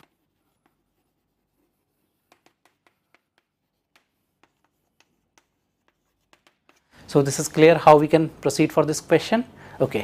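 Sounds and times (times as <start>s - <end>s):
chalk writing on a chalkboard: 0.0s - 7.1s.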